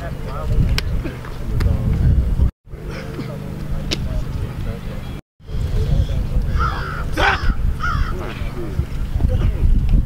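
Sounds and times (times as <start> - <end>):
crow cawing: 6.5 - 8.2.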